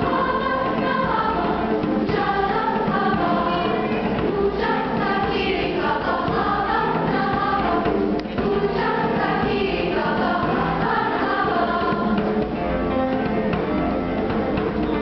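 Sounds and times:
girls' choir singing: 0.0s - 12.6s.

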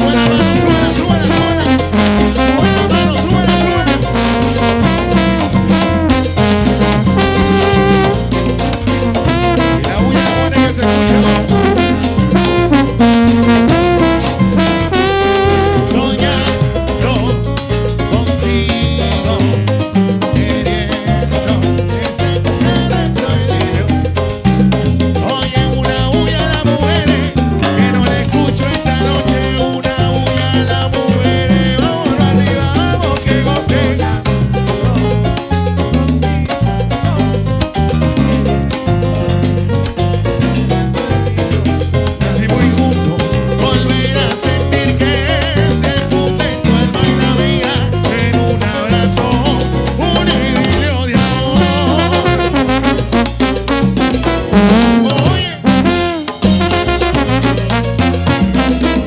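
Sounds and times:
man singing lead: 0.0s - 5.3s, 9.3s - 24.2s, 25.2s - 37.5s, 40.4s - 53.0s, 54.6s - 56.2s
salsa band playing: 0.0s - 59.0s.

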